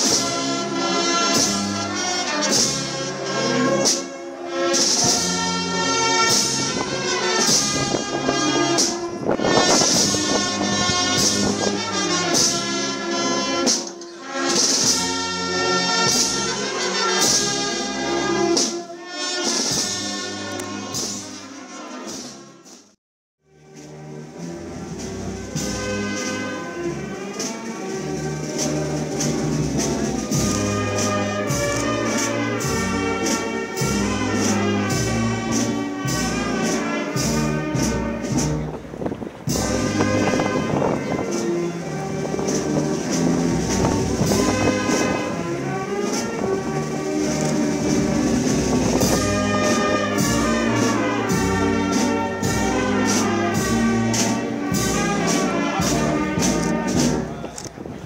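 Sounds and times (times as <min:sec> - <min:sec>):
drum beats: 0:00.0 - 0:23.0, 0:23.8 - 0:57.6
trumpets and trombones melody: 0:00.0 - 0:58.0.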